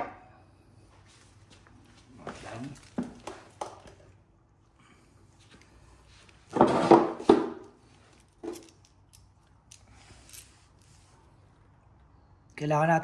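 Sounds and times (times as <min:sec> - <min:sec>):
metal bolts jangling: 0:08.0 - 0:10.6.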